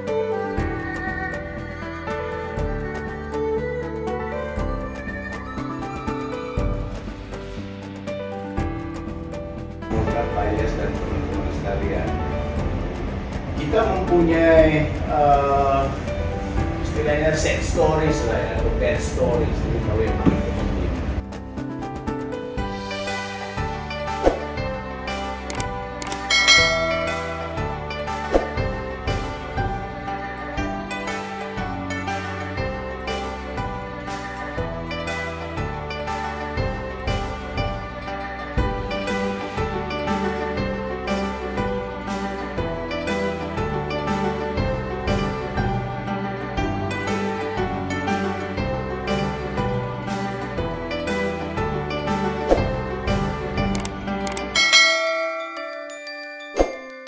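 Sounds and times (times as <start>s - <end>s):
soft background music: 0.0s - 57.0s
mouse clicks: 25.5s - 26.3s, 53.8s - 54.4s
notification bell chime: 26.1s - 27.8s, 54.3s - 57.0s.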